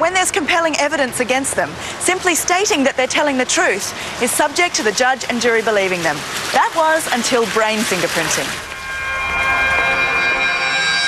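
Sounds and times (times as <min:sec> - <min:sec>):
electronic synth drone: 0:08.6 - 0:11.0.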